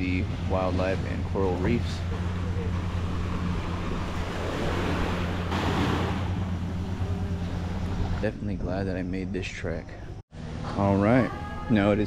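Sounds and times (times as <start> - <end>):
steady low hum: 0.0 - 12.0
surf washing onto beach: 1.0 - 6.8.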